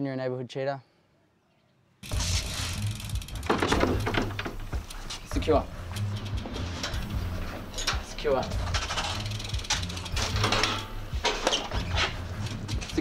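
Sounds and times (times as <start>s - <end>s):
low background music: 2.0s - 13.0s
metal grille rattling and clanking: 3.4s - 13.0s.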